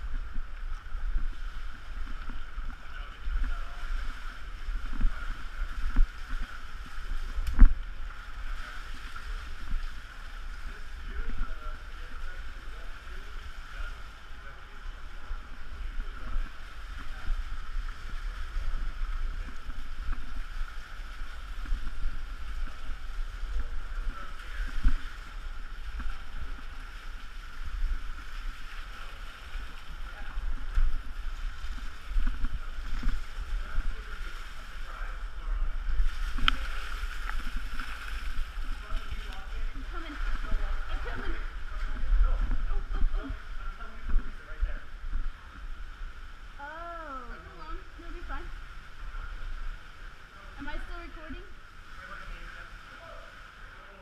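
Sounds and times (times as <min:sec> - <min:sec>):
running water rushing: 0:00.0 - 0:54.0.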